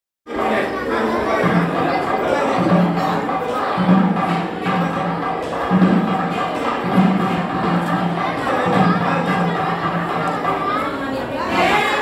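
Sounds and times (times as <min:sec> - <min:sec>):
crowd chatter: 0:00.3 - 0:12.0.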